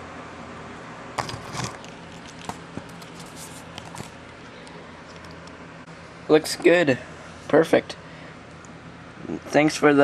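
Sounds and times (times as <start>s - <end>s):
steady low hum: 0.0s - 10.0s
plastic packaging crinkling: 1.2s - 5.5s.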